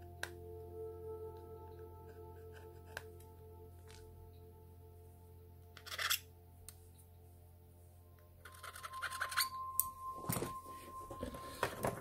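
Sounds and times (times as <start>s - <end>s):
faint steady tones: 0.0s - 12.0s.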